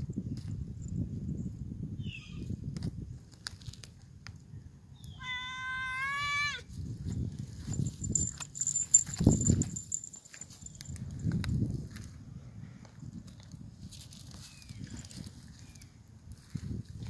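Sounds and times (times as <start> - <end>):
kitten meowing: 5.1 - 6.6.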